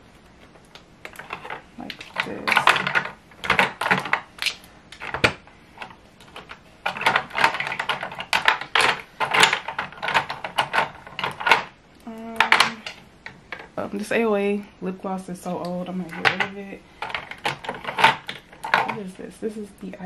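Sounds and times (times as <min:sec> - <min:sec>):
plastic tubes clicking and clattering: 0:00.6 - 0:13.7, 0:15.6 - 0:19.2.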